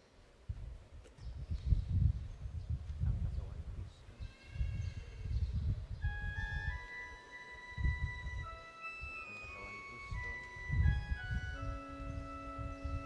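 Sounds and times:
uneven low rumbling: 4.6s - 13.0s
organ-like hymn melody: 5.8s - 13.0s.

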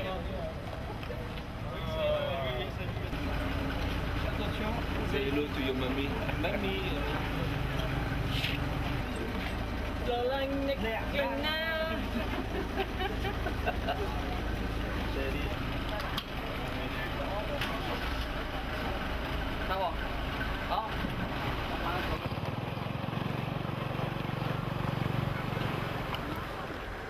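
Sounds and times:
people talking outdoors: 0.0s - 27.0s.

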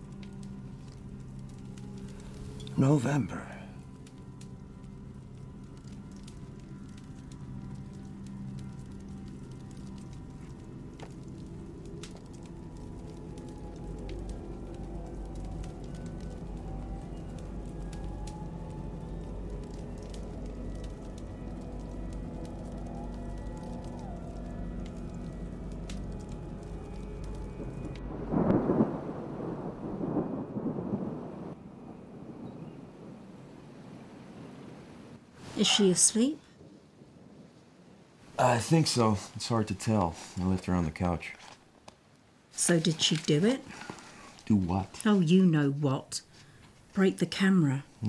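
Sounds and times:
low steady drone: 0.0s - 33.2s
rain hissing: 0.0s - 47.0s
thunder rolling: 12.6s - 35.3s.

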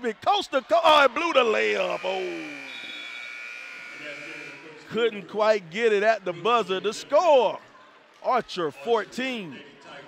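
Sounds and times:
scoreboard buzzer: 1.6s - 4.8s.

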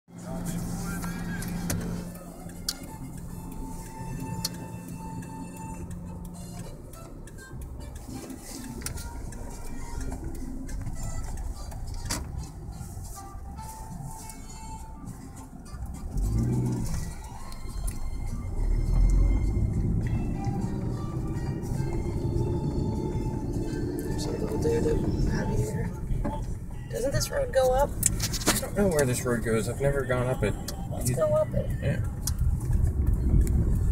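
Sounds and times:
car engine and road rumble: 0.1s - 33.9s
music in background: 0.1s - 33.9s
faint voices: 0.2s - 2.7s.

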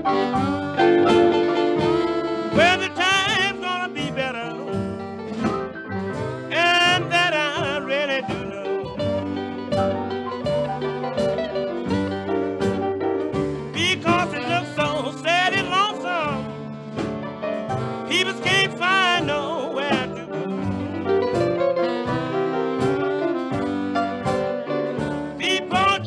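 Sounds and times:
lead instrument bending phrases: 0.0s - 26.0s
plucked accompaniment: 0.0s - 26.0s.

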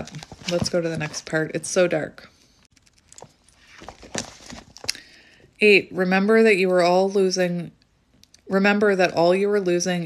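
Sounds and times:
pages rustling: 0.0s - 1.6s, 2.6s - 5.3s.

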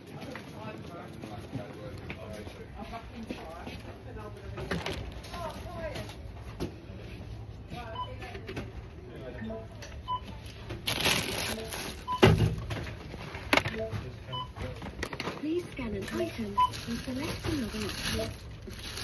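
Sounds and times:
barcode scanner beeping: 16.0s - 17.6s.

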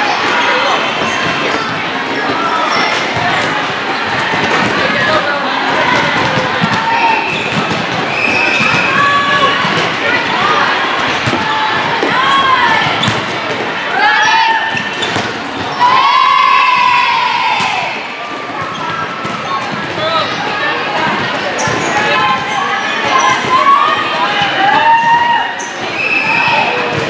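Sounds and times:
people calling and shouting: 0.0s - 27.0s
volleyball hits: 1.0s - 14.0s, 14.6s - 16.0s.

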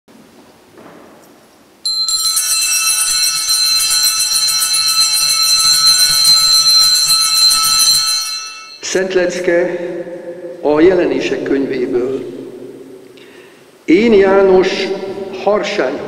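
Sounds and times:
altar bells ringing rapidly: 1.8s - 9.2s.

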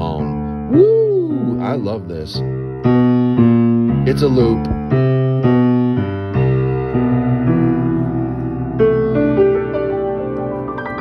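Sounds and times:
piano walking bass line: 0.0s - 11.0s.

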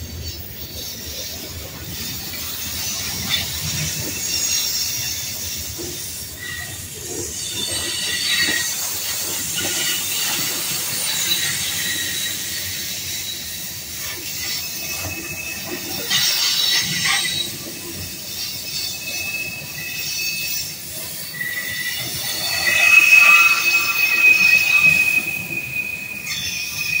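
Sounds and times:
train cars rolling past: 0.0s - 27.0s
train wheels squealing on rails: 0.0s - 27.0s.

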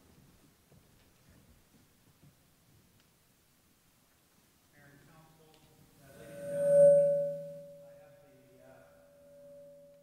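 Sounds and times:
public address feedback ringing: 6.1s - 8.0s.

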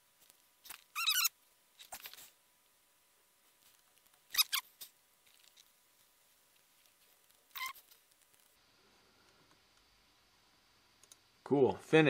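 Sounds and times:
high-pitched squeaky chirps: 0.9s - 1.4s, 4.3s - 4.7s, 7.5s - 7.8s.

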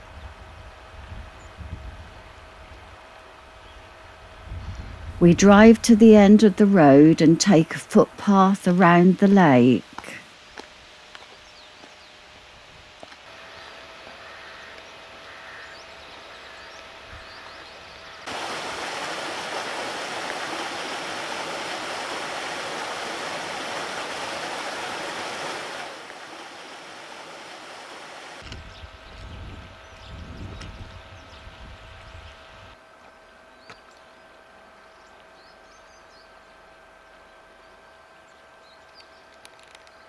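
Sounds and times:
water rushing over stones: 18.3s - 28.4s.

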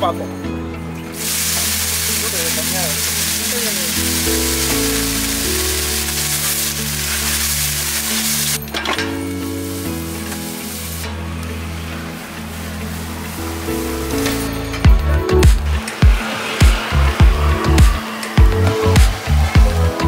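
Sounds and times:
background music with low notes: 0.0s - 20.0s
water sizzling on hot griddle: 1.0s - 20.0s.

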